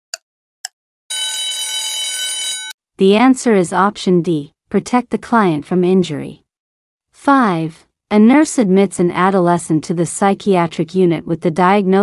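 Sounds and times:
alarm bell ringing: 1.1s - 2.8s.

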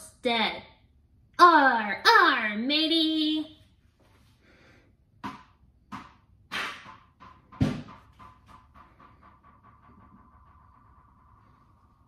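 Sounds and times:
ball bouncing on hard floor: 5.2s - 11.8s.

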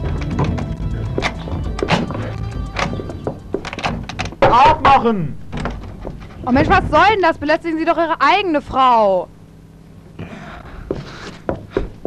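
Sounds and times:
knocks and thuds: 0.0s - 7.7s.

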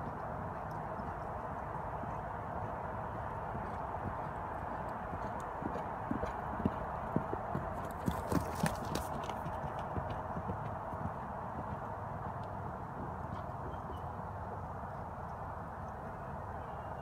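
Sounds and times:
horse hoofbeats on dirt: 0.0s - 16.0s.

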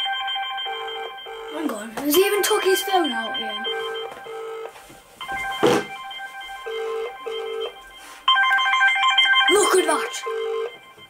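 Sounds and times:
phone ringback tone: 0.0s - 11.0s.

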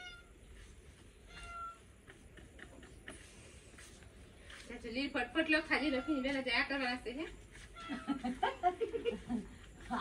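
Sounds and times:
cat meowing faintly: 1.3s - 1.8s, 5.7s - 6.4s.

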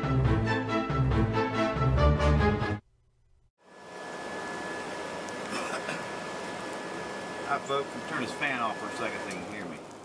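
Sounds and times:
electric fan running: 3.6s - 10.0s.

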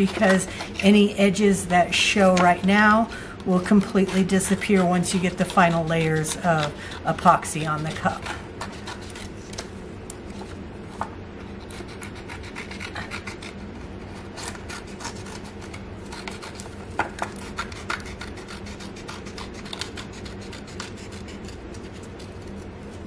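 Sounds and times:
scissors snipping paper: 0.0s - 0.9s, 2.2s - 9.7s, 14.2s - 22.7s.

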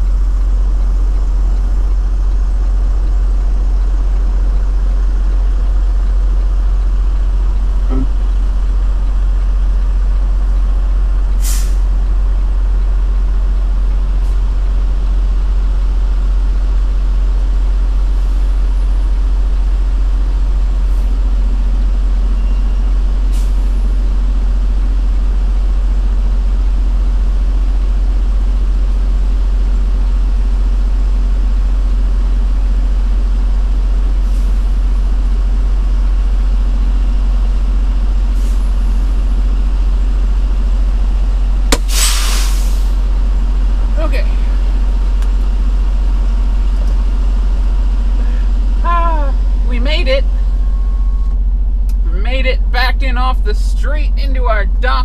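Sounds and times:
diesel engine idling: 0.0s - 55.0s
air brake hissing: 11.4s - 11.9s, 41.7s - 43.0s
sharp click: 41.7s - 42.2s.

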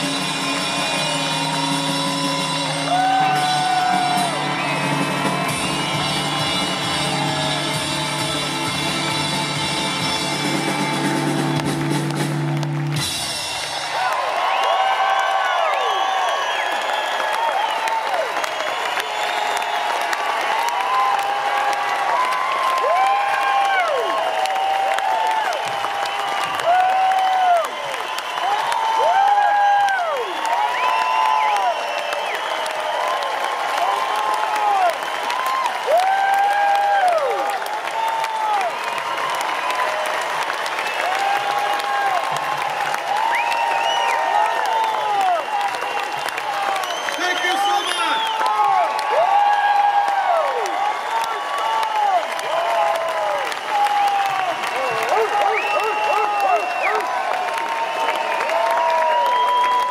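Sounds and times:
crowd cheering: 0.0s - 59.9s
crowd clapping: 0.0s - 59.9s.

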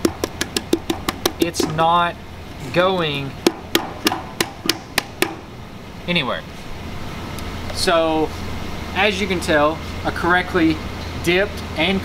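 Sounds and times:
knocks on plastic hard hat: 0.0s - 1.7s.

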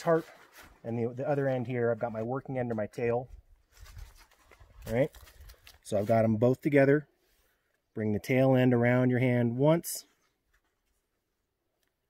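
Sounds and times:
paracord rustling and ticking: 0.0s - 6.4s, 10.2s - 12.0s.

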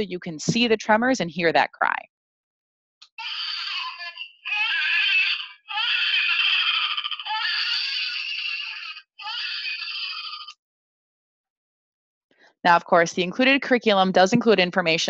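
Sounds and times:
high-pitched infant crying: 3.1s - 10.5s.

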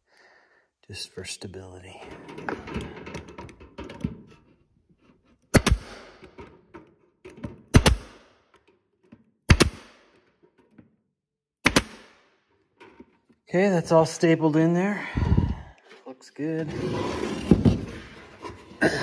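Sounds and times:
staple gun firing: 5.6s - 6.2s, 7.7s - 8.2s, 9.5s - 10.2s, 11.6s - 12.3s.

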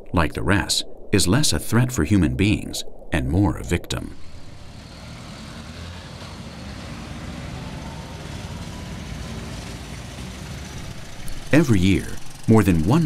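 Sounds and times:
road noise: 4.2s - 13.0s
motor scooter engines: 4.4s - 13.0s.

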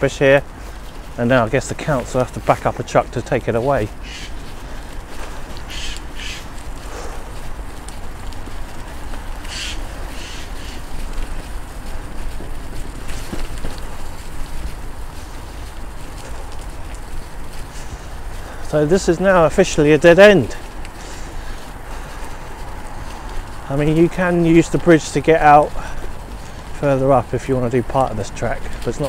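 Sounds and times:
bicycle tyres on dirt path: 0.0s - 29.0s.

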